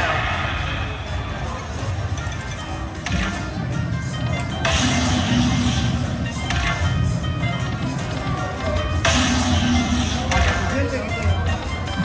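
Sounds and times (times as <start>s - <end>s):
game sound effects: 0.0s - 12.0s
slot machine bonus music: 1.9s - 12.0s.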